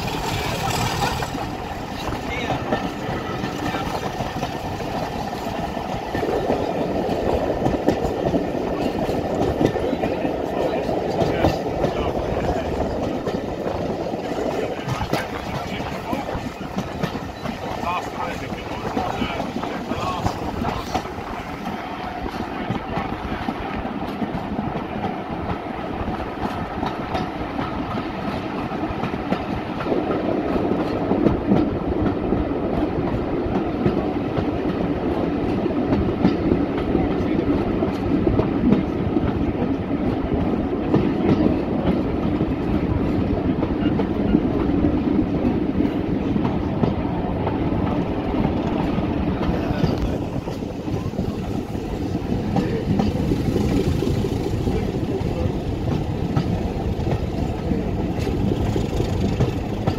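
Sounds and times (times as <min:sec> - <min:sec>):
diesel locomotive running: 0:00.0 - 0:59.9.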